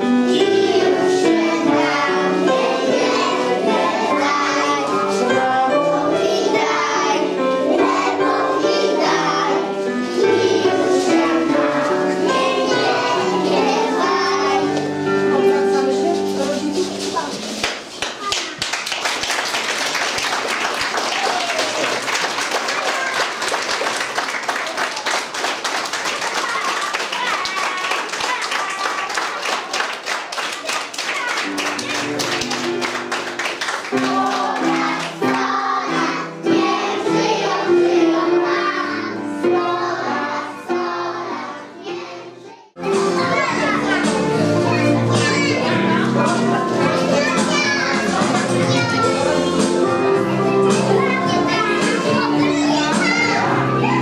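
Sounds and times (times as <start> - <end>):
audience applause: 17.6 - 34.6.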